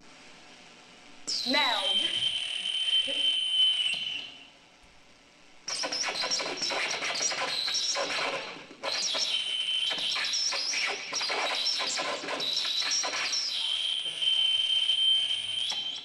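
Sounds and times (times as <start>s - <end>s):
high squealing electronic tone: 1.3s - 4.4s, 5.7s - 16.0s
glitchy electronic crackling: 5.7s - 13.4s.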